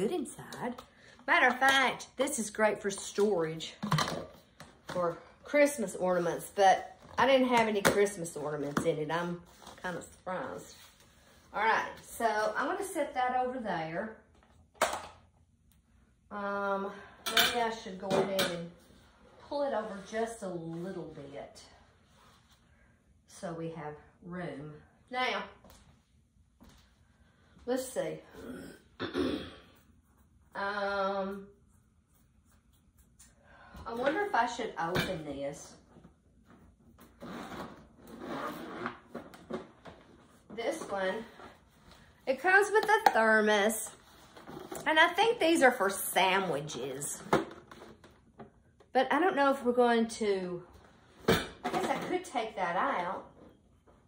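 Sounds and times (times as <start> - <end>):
bag zipper opening: 37.2 - 39.1.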